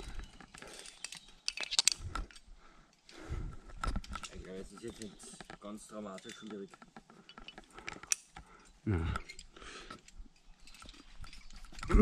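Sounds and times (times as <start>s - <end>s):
carabiner clicks: 0.0s - 8.4s
rope rustling: 0.0s - 12.0s.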